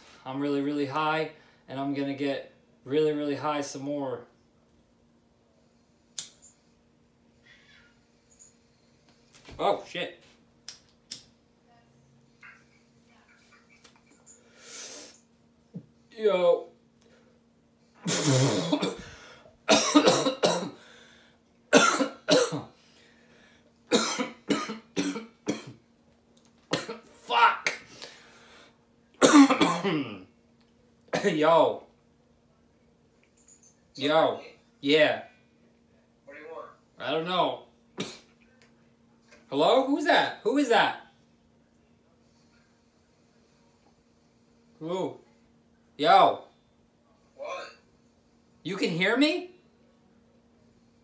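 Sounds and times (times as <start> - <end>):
man clearing his throat: 18.0 - 19.1, 19.7 - 20.8, 21.7 - 22.7, 23.9 - 25.8, 29.2 - 30.3, 38.0 - 38.4.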